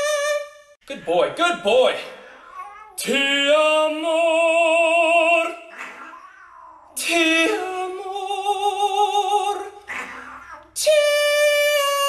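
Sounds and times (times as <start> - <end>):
high voice singing long notes: 0.0 - 0.7, 7.0 - 12.0.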